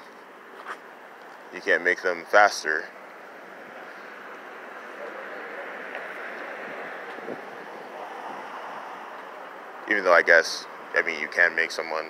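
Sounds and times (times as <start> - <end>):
hiss of passing traffic: 0.4 - 12.0.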